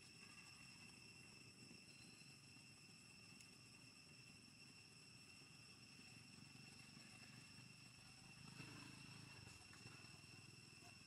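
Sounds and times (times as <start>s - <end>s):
faint high-pitched tone: 1.8s - 2.5s.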